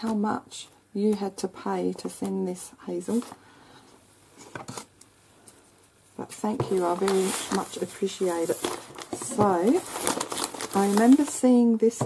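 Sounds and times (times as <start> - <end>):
plastic envelope rustling: 6.2 - 11.6.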